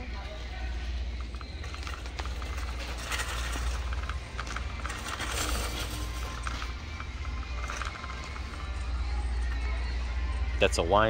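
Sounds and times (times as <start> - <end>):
background music: 0.0 - 11.0
shopping cart rolling on concrete: 0.1 - 9.9
cart rattling: 0.3 - 10.0.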